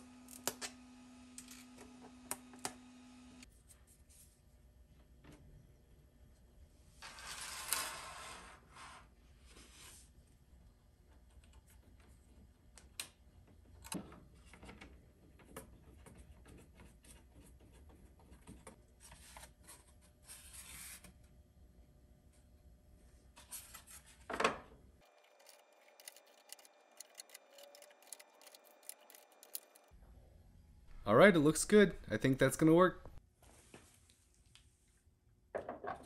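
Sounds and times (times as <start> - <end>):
plastic parts clicking and tapping: 25.1 - 29.9.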